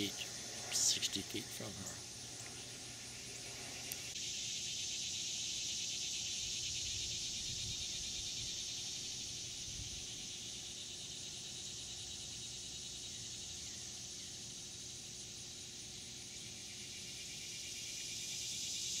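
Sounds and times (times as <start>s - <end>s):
insects chorus: 0.0s - 19.0s.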